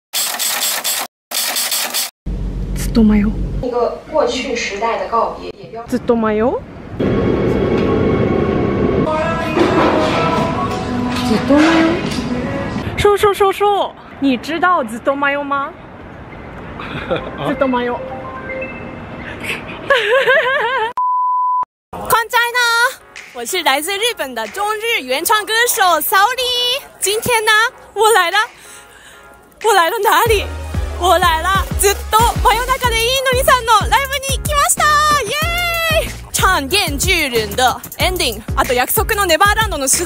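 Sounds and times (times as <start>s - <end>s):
woman laughing: 16.8s - 17.6s, 19.3s - 21.0s
electronic beep tone: 17.2s - 19.4s.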